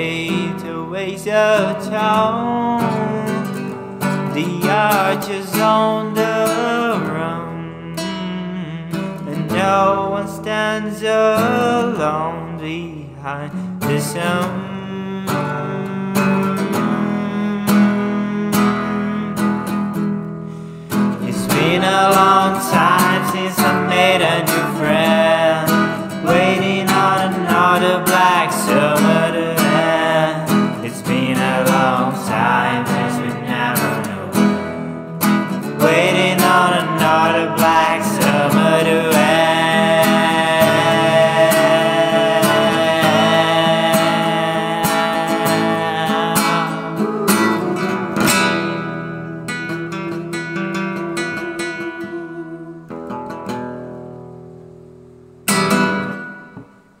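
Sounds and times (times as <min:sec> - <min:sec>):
man singing: 0:00.0 - 0:20.0, 0:21.1 - 0:49.0, 0:49.7 - 0:53.1
acoustic guitar strumming: 0:00.0 - 0:57.0.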